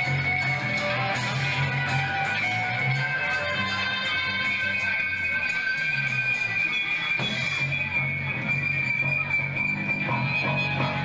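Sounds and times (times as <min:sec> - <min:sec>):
rock band with distorted guitars: 0:00.0 - 0:11.0.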